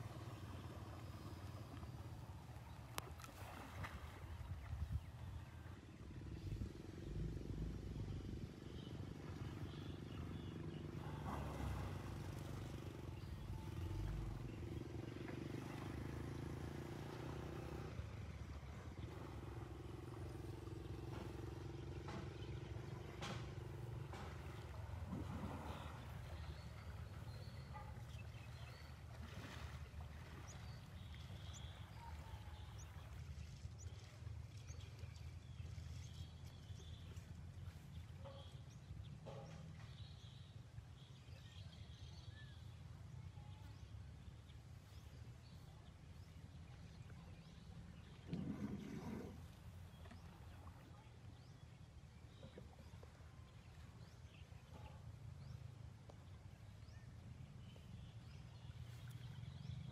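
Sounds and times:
motor-like hum: 0.0 - 59.9
outdoor low rumble: 4.0 - 41.1, 41.7 - 59.9.

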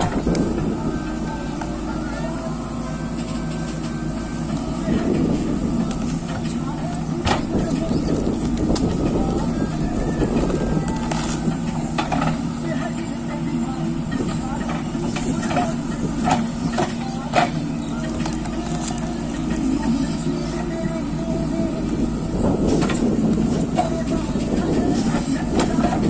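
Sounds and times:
diesel engine running: 0.0 - 26.0.

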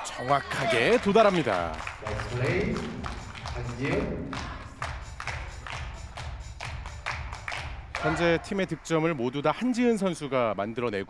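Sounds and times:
people clapping: 0.0 - 9.6.

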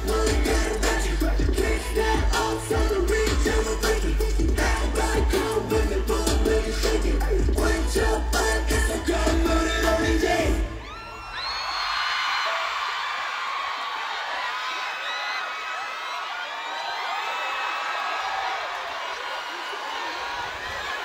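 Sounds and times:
pop music with heavy bass: 0.0 - 11.3
crowd cheering and screaming: 0.0 - 21.0.

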